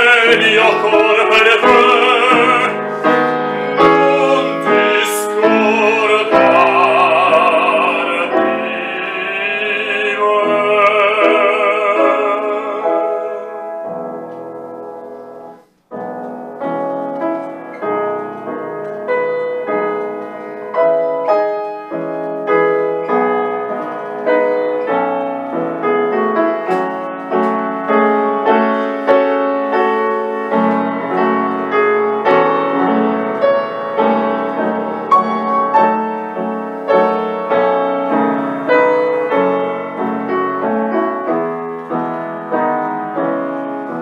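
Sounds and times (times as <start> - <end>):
upright piano melody: 0.0 - 44.0.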